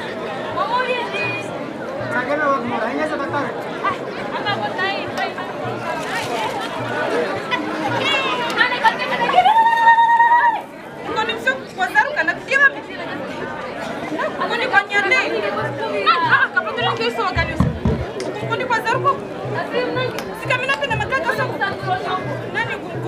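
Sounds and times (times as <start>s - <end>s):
voices talking and calling out: 0.0s - 23.0s
deep low thump: 17.4s - 18.2s
steady low beat: 17.4s - 18.2s.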